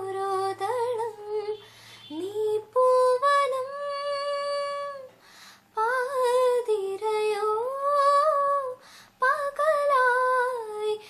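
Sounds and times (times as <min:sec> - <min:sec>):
woman singing unaccompanied: 0:00.0 - 0:11.0
woman taking a breath: 0:01.6 - 0:02.1, 0:05.2 - 0:05.7, 0:08.8 - 0:09.2.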